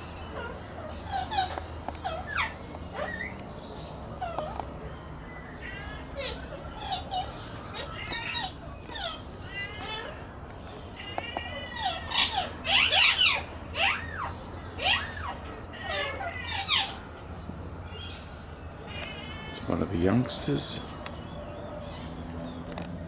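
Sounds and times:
magpies warbling calls: 0.0 - 23.0.

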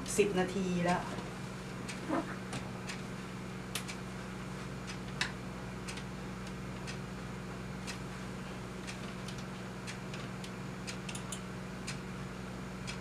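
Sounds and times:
low electrical hum: 0.0 - 13.0
person murmuring: 2.0 - 2.4.

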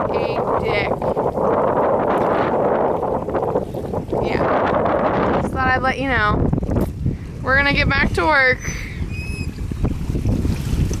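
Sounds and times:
wind buffeting microphone: 0.0 - 11.0
brief high squeak: 8.6 - 9.6.

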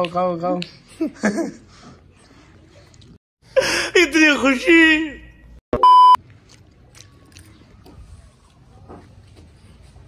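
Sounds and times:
censor bleep: 5.8 - 6.2.

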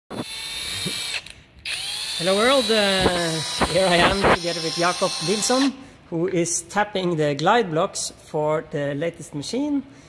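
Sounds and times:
cordless drill motor whining: 0.1 - 5.7.

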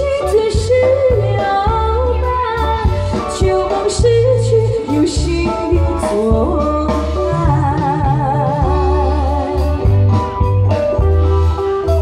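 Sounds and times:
woman singing: 0.0 - 10.0
live band playing: 0.0 - 12.0.

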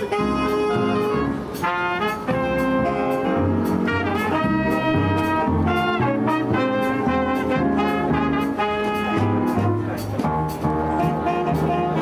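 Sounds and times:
jazz big band playing: 0.0 - 12.0.

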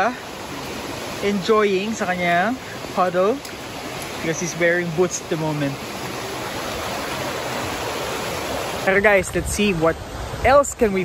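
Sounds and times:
stream rushing over rocks: 0.0 - 11.0.

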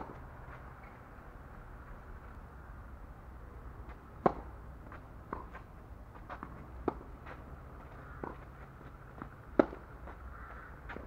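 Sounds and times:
tennis racket striking ball: 4.2 - 5.7, 9.2 - 9.9.

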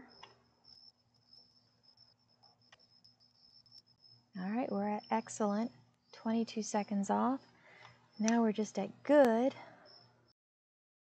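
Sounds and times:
crickets trilling: 0.0 - 10.3
faint clicks: 7.8 - 8.4.

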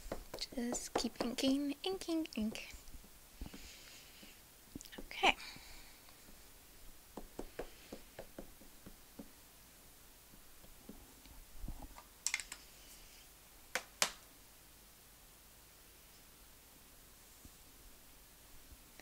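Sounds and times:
ink pad tapping on stamp: 0.1 - 1.7.

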